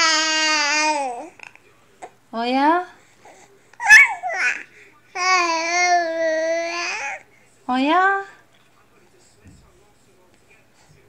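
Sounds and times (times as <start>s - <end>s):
baby squealing coo: 3.8s - 4.6s.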